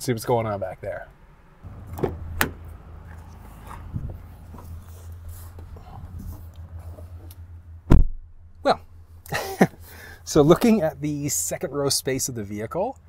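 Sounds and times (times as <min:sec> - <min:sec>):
running car hum: 0:01.1 - 0:13.0
car door slamming: 0:01.6 - 0:03.1, 0:07.9 - 0:08.2
car door latch click: 0:01.7 - 0:02.7
rustling and shuffling: 0:01.7 - 0:07.8.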